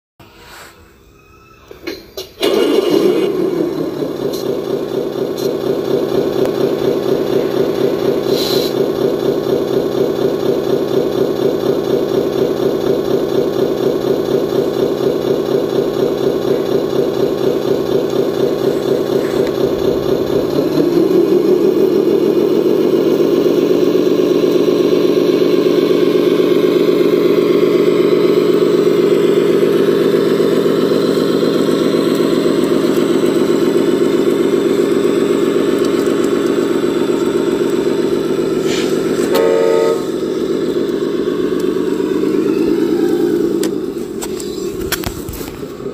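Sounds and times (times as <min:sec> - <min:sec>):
diesel truck engine idling and revving: 0:01.9 - 0:45.9.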